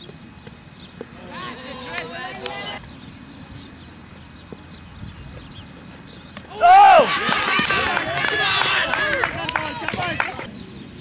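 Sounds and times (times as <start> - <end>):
boys shouting together: 1.2 - 2.8, 6.5 - 10.5
loud shout: 6.5 - 10.5.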